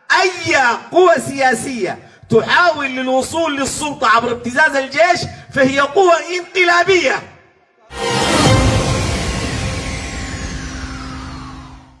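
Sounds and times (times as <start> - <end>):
noisy whoosh: 7.9 - 12.0
thin tone gliding downward: 7.9 - 12.0.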